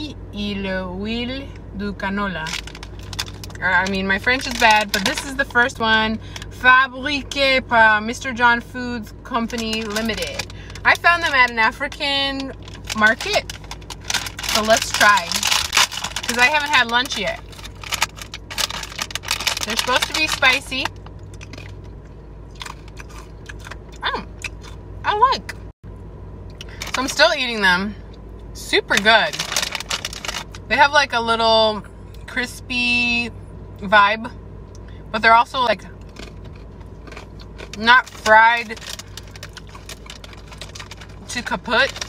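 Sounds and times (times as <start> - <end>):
steady low hum: 0.0 - 42.0
chip crunching while chewing: 2.5 - 3.6, 12.5 - 21.9, 22.5 - 24.8, 29.3 - 30.6, 36.0 - 42.0.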